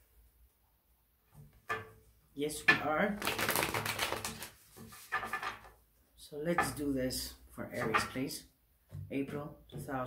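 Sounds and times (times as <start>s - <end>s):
playing cards riffle-shuffled: 3.2s - 5.7s.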